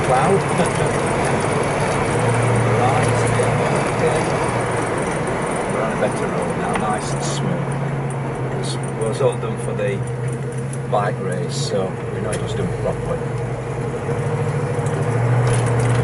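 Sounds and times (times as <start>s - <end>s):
car engine cruising: 0.0s - 16.0s
road noise: 0.0s - 16.0s.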